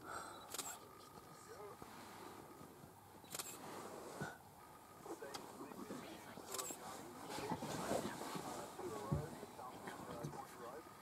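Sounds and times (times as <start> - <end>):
camera shutter clicks: 3.2 - 3.6.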